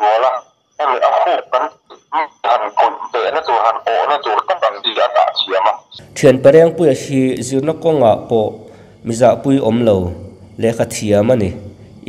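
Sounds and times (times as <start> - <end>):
person talking: 0.0 - 11.6.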